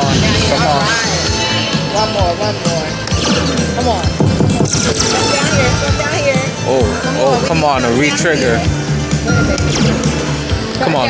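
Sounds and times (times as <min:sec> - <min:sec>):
slot machine bonus music: 0:00.0 - 0:11.0.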